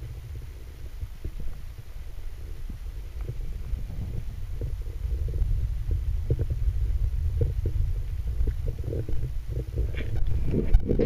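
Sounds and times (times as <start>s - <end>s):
underwater rumble: 0.0s - 11.0s.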